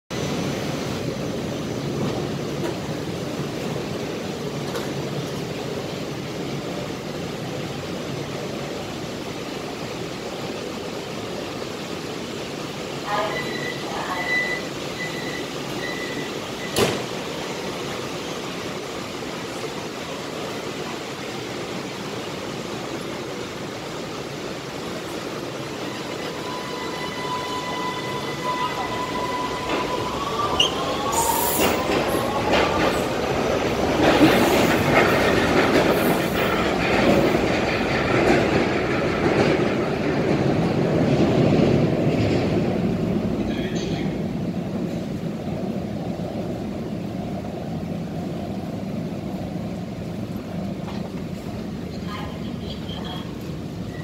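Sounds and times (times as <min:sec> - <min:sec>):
electric train whine: 0:00.1 - 0:54.0
wheels rumbling on rails: 0:00.1 - 0:54.0.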